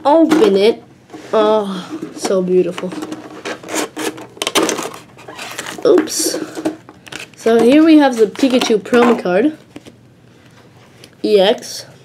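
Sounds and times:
plastic insert scraping: 0:02.7 - 0:08.8.

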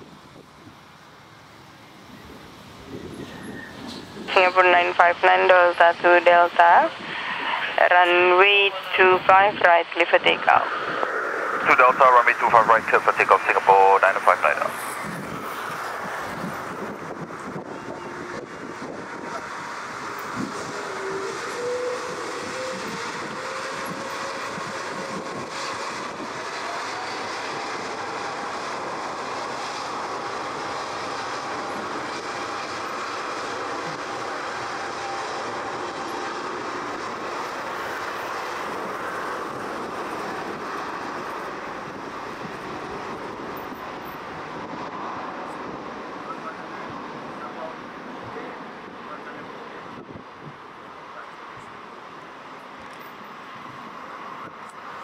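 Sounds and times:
jet engine noise: 0:00.0 - 0:55.0
jet engine whine rising: 0:00.0 - 0:55.0.

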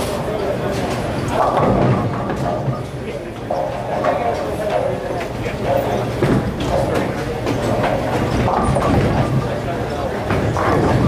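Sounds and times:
bowling balls rolling: 0:00.9 - 0:11.0.

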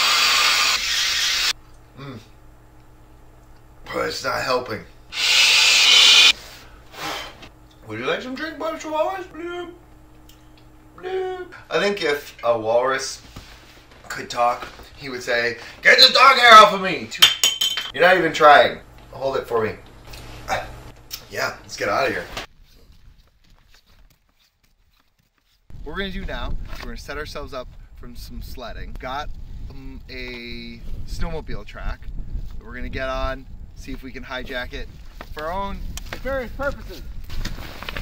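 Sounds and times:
person blowing into inflatable valve: 0:00.0 - 0:02.2, 0:05.1 - 0:07.5
man talking: 0:07.8 - 0:09.8, 0:14.1 - 0:17.2.

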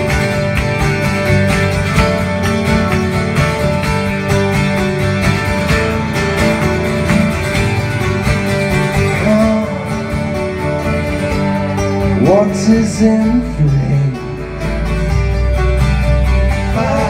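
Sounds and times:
acoustic guitars strumming: 0:00.0 - 0:17.0
electric bass: 0:00.0 - 0:17.0.

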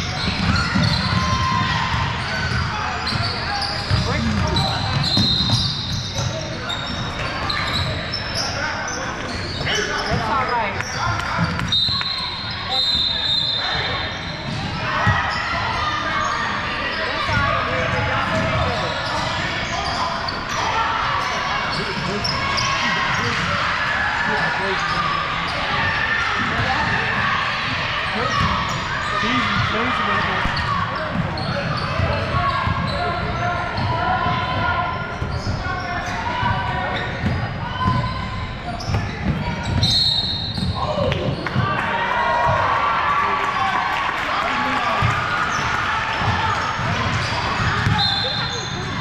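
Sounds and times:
indistinct voices in hall: 0:00.0 - 0:49.0.

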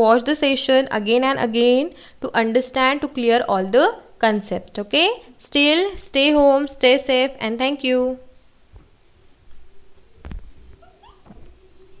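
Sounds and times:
animal calls: 0:09.8 - 0:12.0.

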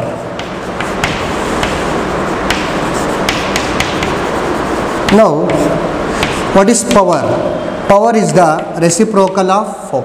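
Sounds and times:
chalk tapping and writing on chalkboard: 0:00.0 - 0:07.0, 0:08.5 - 0:09.5
steady background hiss: 0:00.0 - 0:10.0.

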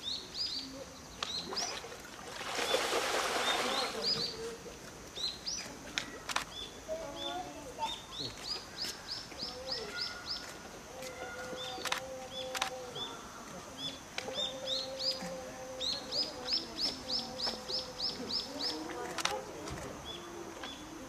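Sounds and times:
songbird chirping: 0:00.0 - 0:21.0.

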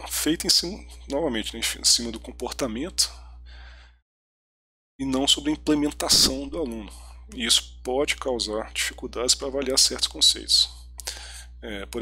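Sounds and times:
man speaking: 0:00.0 - 0:03.2, 0:05.0 - 0:10.9, 0:11.6 - 0:12.0
faint low hum: 0:00.0 - 0:04.0, 0:05.0 - 0:12.0
man's intake of breath: 0:03.2 - 0:04.0, 0:11.0 - 0:11.6.

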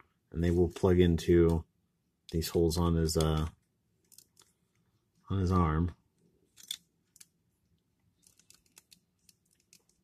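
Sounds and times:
plastic parts clicking together: 0:06.5 - 0:07.4.

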